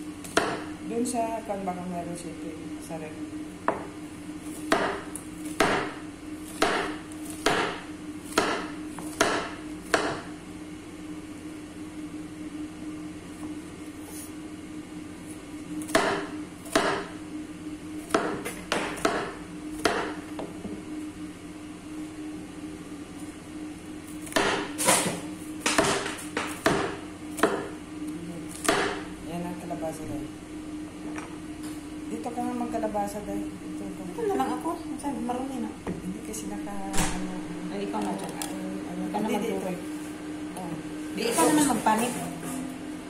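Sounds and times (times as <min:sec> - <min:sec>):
steady low hum: 0:00.0 - 0:43.0
knife chopping on wooden board: 0:00.2 - 0:00.7, 0:03.6 - 0:10.3, 0:15.8 - 0:17.1, 0:18.1 - 0:20.6, 0:24.2 - 0:27.7, 0:28.5 - 0:29.0.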